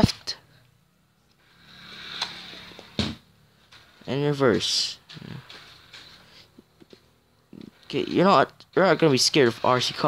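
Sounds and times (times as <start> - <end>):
toy car electric motor buzzing: 1.4 - 2.8.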